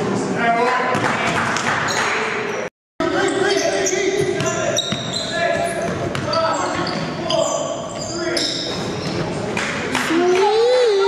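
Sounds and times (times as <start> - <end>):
players' voices: 2.5 - 11.0
sneaker squeaks on hardwood: 3.2 - 9.3.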